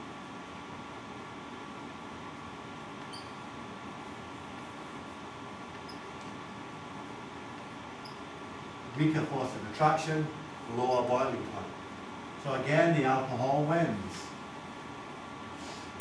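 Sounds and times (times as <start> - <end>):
room hiss and hum: 0.0 - 16.0
marker squeaking on whiteboard: 5.8 - 6.2.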